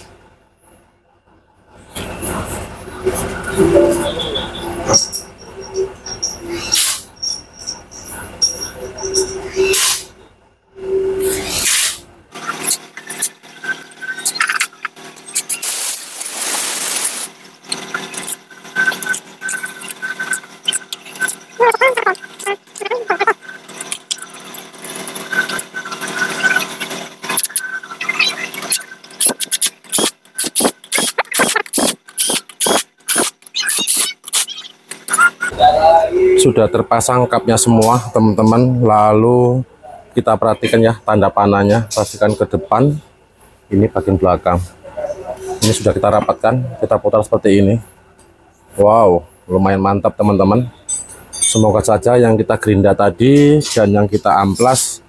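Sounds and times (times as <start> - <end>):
brief squeak: 3.2 - 10.2, 25.3 - 35.6
metal tools clinking: 50.8 - 51.8.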